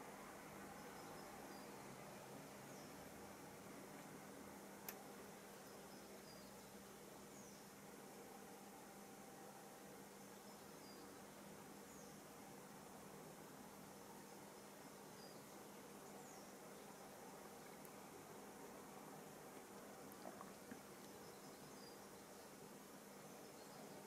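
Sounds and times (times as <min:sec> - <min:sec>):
faint steady hiss: 0:00.0 - 0:24.0.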